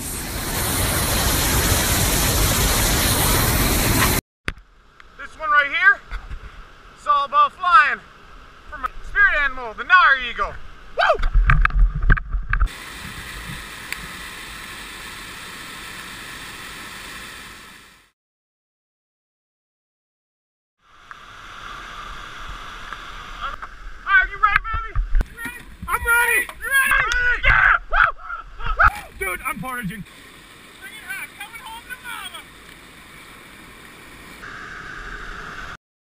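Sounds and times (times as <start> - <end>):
white water rushing: 0.0 - 4.2, 12.7 - 18.0, 25.2 - 27.5, 28.8 - 35.8
man yelling: 11.0 - 11.2, 24.0 - 29.9, 30.8 - 32.5
people yelling and whooping: 25.9 - 29.2.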